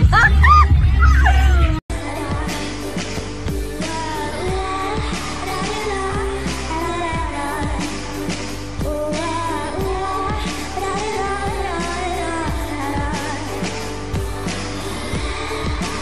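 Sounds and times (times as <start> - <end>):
pop song with singing: 0.0 - 16.0.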